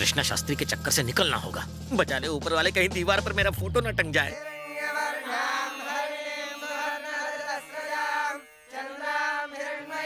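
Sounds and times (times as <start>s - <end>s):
group chanting in unison: 4.4s - 10.0s.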